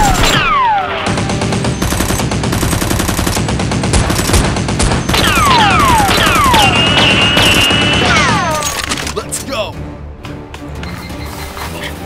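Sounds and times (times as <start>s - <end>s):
machine gun burst: 1.1s - 9.1s.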